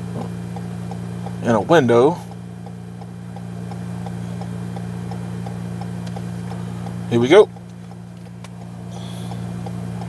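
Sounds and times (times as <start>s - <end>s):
steady low hum: 0.0s - 10.0s
faint even ticking: 0.2s - 10.0s.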